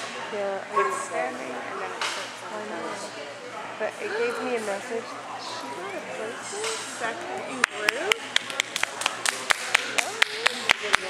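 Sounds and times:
voices talking in a large hall: 0:00.0 - 0:11.0
hand clapping: 0:07.6 - 0:11.0.

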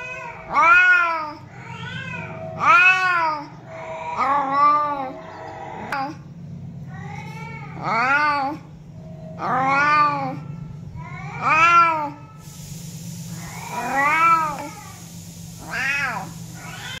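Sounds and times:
cat meowing: 0:13.4 - 0:15.0, 0:15.6 - 0:17.0.

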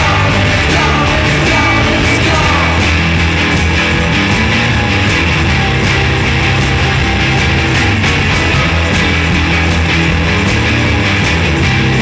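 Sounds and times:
bass guitar: 0:00.0 - 0:12.0
distorted electric guitars: 0:00.0 - 0:12.0
drums: 0:00.0 - 0:12.0.

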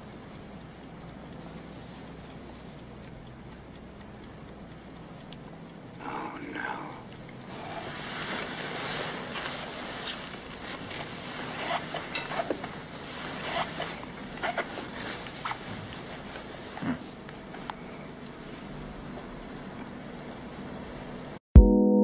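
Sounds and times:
steady hiss: 0:00.0 - 0:21.4.

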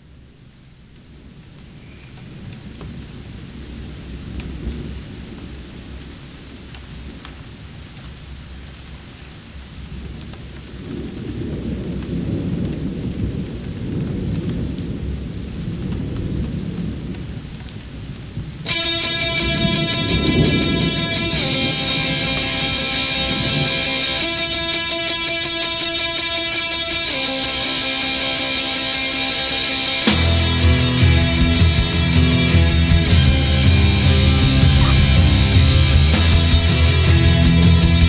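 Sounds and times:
rain: 0:00.0 - 0:38.0
rumbling thunder: 0:09.9 - 0:25.5
electric guitar chord: 0:18.7 - 0:38.0.

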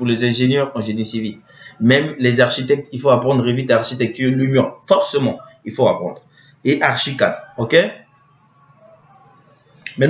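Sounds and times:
speech: 0:00.0 - 0:10.0.

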